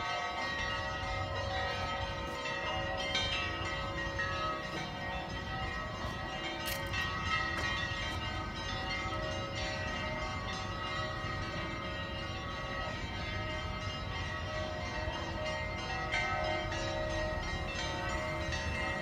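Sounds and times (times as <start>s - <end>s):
church bells ringing: 0.0s - 19.0s.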